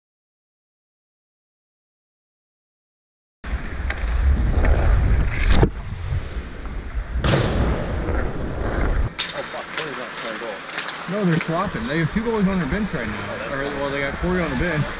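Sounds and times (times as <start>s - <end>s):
wind buffeting microphone: 3.5s - 9.2s
rink noise: 3.5s - 14.9s
hockey sticks and pucks knocking: 9.1s - 13.3s.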